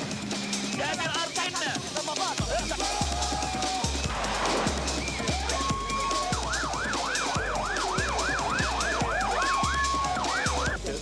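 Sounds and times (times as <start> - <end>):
music with electronic beat: 0.0 - 11.0
siren yelping: 5.0 - 10.8.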